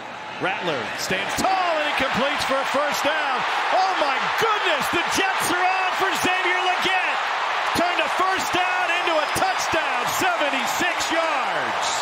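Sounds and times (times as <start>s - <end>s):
stadium crowd cheering: 0.0s - 12.0s
man calling out excitedly: 1.2s - 11.8s.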